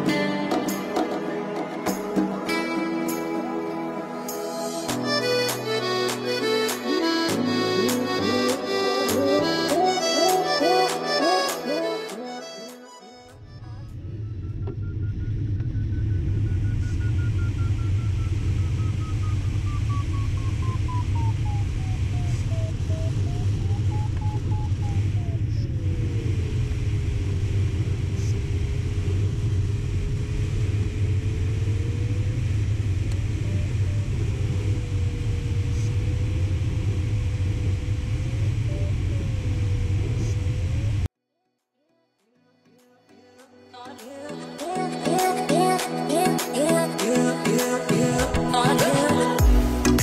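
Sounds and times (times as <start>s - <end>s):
variometer tone sliding in pitch: 13.0s - 41.1s.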